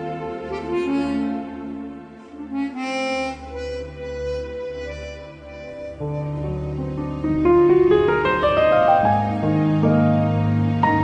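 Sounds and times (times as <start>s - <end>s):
chromatic harmonica ballad melody: 0.4s - 7.2s.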